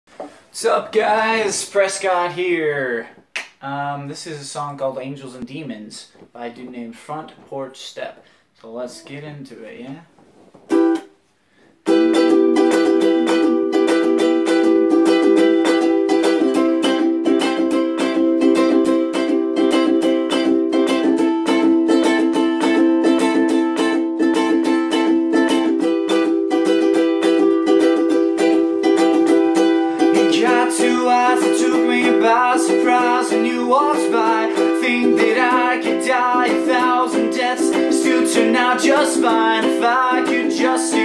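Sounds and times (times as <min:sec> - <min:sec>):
ukulele strumming chords: 0:08.7 - 0:09.8, 0:10.7 - 0:11.2, 0:11.8 - 0:41.0.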